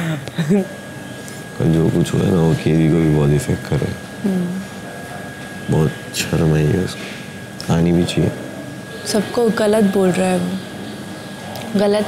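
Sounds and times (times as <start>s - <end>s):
man talking: 1.6s - 4.0s, 5.7s - 8.4s.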